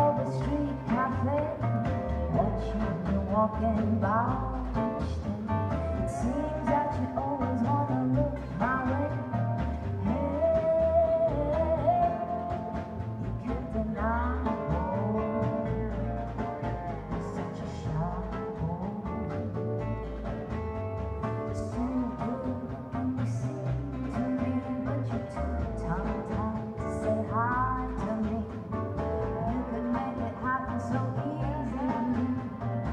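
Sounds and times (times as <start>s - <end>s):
acoustic guitar: 0.0s - 32.9s
upright double bass: 0.0s - 32.9s.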